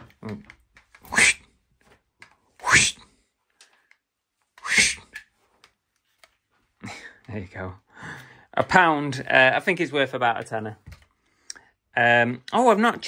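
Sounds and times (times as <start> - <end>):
toy whip whooshing cracks: 1.0 - 1.4, 4.6 - 5.3.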